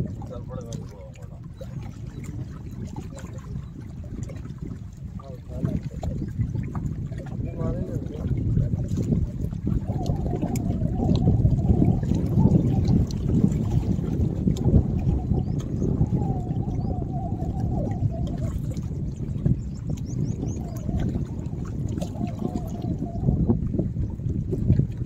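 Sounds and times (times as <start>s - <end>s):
water lapping against rocks: 0.0s - 25.0s
wind rumble on microphone: 0.0s - 25.0s.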